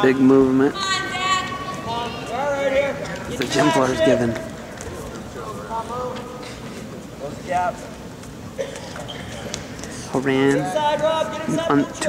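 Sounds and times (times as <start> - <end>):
voices shouting long calls: 0.7 - 4.3.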